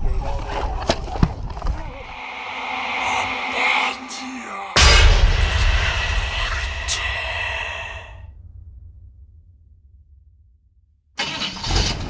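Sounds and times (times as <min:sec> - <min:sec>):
sudden hit with deep rumble: 0:02.2 - 0:10.5.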